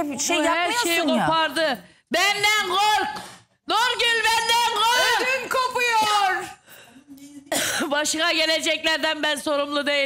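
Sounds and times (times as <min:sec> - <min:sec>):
harsh cough: 0:07.4 - 0:08.0.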